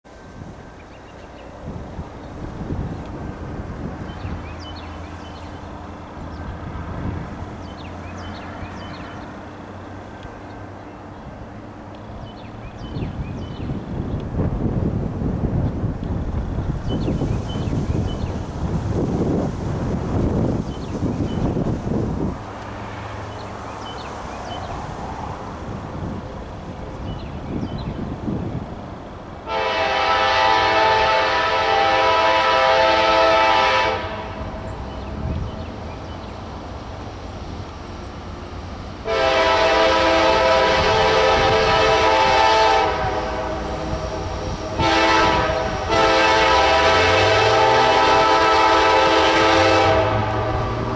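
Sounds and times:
diesel locomotive engine rumble: 0.1 - 50.9
wind buffeting microphone: 1.4 - 9.0, 12.2 - 29.2, 33.2 - 50.9
locomotive air horn chord: 29.5 - 34.7, 39.0 - 50.9.

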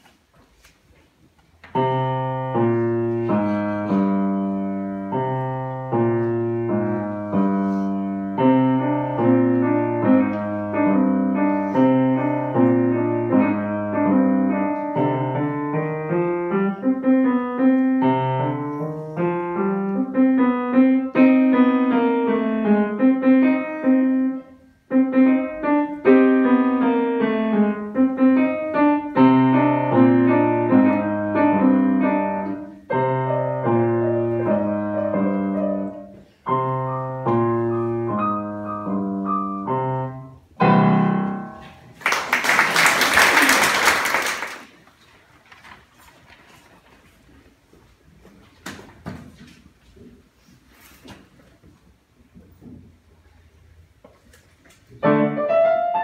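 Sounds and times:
solo grand piano piece: 1.7 - 43.2, 54.8 - 56.0.

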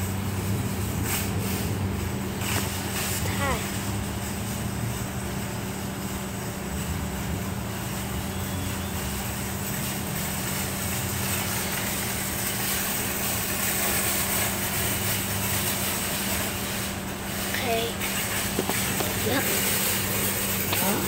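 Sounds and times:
steady mechanical hum: 0.0 - 21.0.

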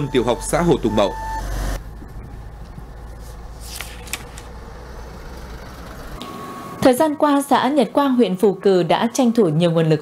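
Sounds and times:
vehicles driving past: 0.0 - 9.0
woman speaking: 6.8 - 10.0.

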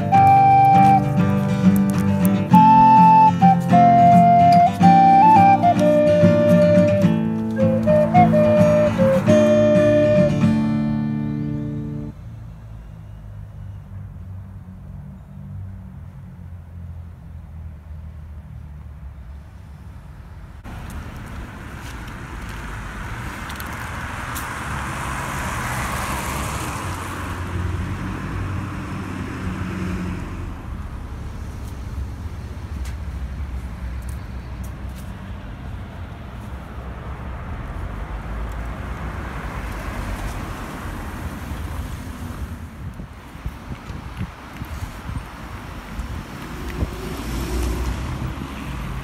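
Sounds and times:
vehicle passing: 0.0 - 12.7, 14.4 - 43.6, 44.5 - 49.0
rumble of traffic: 0.0 - 49.0.

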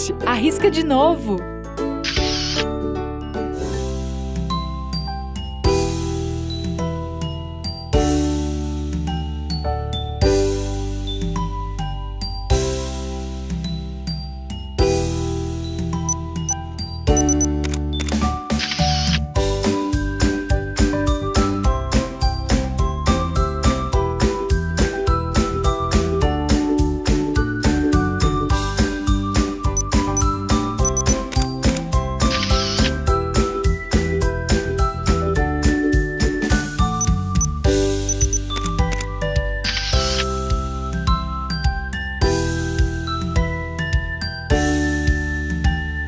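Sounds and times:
background music with chords: 0.0 - 46.0
camera autofocus beeps: 2.1 - 2.6, 17.2 - 19.2, 30.8 - 33.0, 38.1 - 39.1, 39.7 - 40.3
camera shutter click: 2.1 - 2.6, 17.2 - 19.2, 30.9 - 33.0, 39.7 - 40.3.

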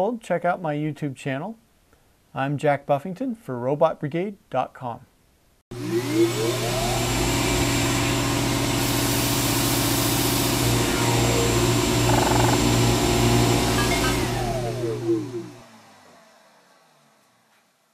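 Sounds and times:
electric machine humming and hissing: 5.8 - 17.3.

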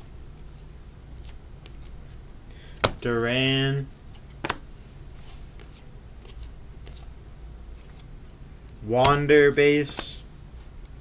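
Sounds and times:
low steady hum: 0.0 - 11.0
cards being flipped by hand: 0.3 - 3.1, 4.1 - 11.0
cards clicking and sliding: 7.8 - 11.0.

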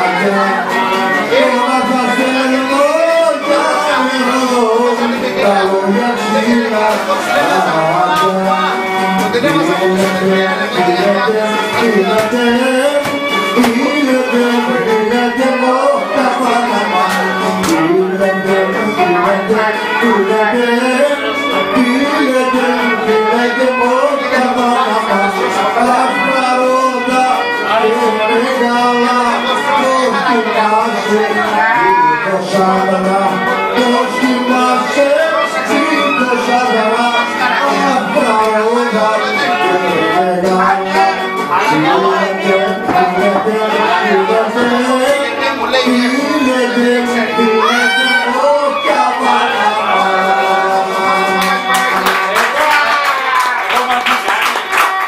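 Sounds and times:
man singing: 0.0 - 55.0
musical accompaniment: 0.0 - 55.0
hand clapping: 51.4 - 55.0.

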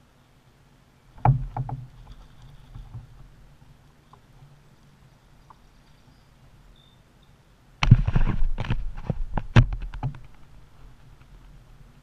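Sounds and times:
camera handling knocks and rattles: 1.2 - 3.2, 7.8 - 10.5.

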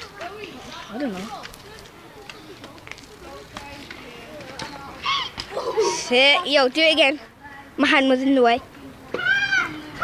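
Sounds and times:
distant talking: 0.0 - 10.0
street ambience: 0.0 - 10.0.

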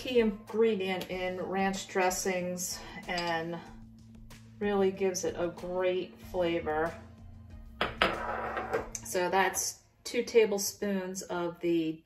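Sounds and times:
spoon tapping a bowl: 3.1 - 3.4.

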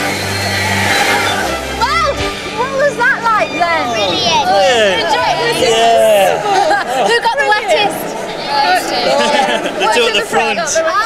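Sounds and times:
background music with sustained notes: 0.0 - 9.8.

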